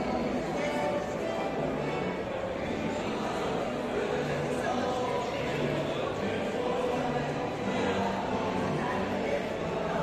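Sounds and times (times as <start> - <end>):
murmur of voices in echoing hall: 0.0 - 10.0.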